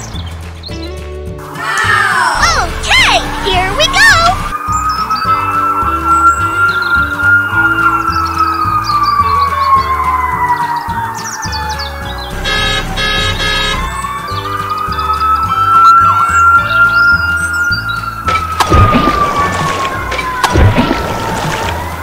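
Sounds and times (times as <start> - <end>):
siren wailing: 3.0 - 22.0.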